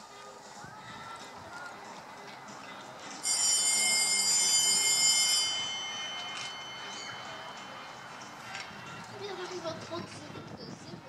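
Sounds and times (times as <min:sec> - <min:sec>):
electronic start bell ringing: 0:03.2 - 0:09.2.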